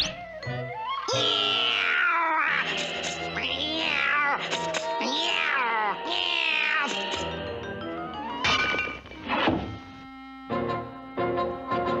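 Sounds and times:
orchestral cartoon music: 0.0 - 12.0
cartoon duck yowling: 0.9 - 2.8.

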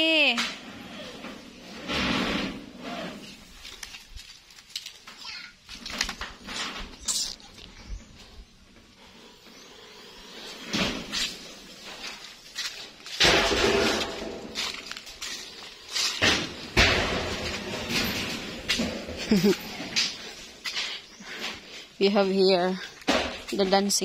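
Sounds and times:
knocks and bangs: 13.2 - 14.8, 16.2 - 19.4.

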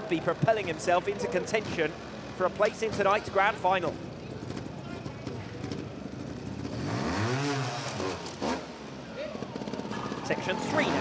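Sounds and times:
background hubbub: 0.0 - 11.0
motorcycle engine revving: 4.4 - 11.0.

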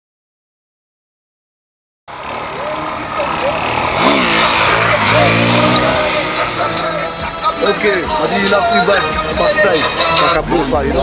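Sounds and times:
motorcycle engine revving: 2.1 - 10.2.

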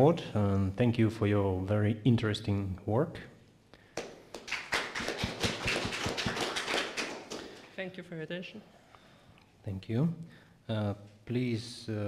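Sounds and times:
small audience applauding: 3.9 - 7.8.

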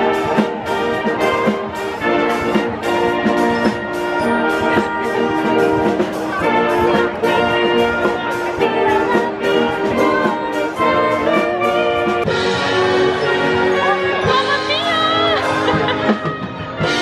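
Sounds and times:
brass band playing: 0.0 - 17.0.

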